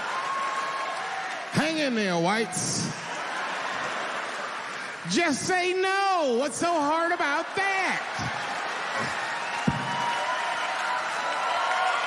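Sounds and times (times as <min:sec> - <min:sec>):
audience applause: 0:00.0 - 0:12.0.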